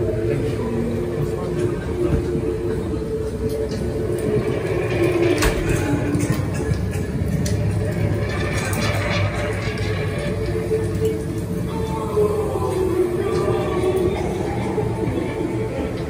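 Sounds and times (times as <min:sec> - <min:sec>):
droning tones: 0:00.0 - 0:16.0.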